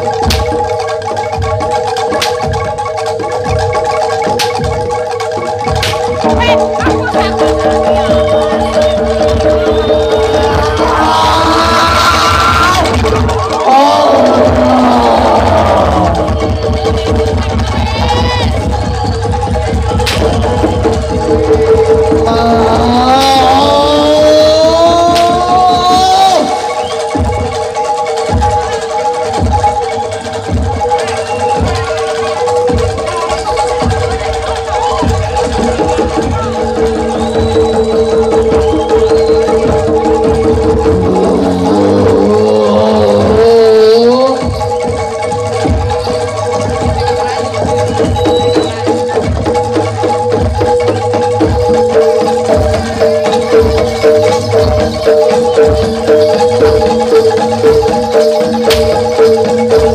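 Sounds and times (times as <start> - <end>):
fast steady drumming: 0.0 - 59.9
wavering melodic line: 18.5 - 59.9.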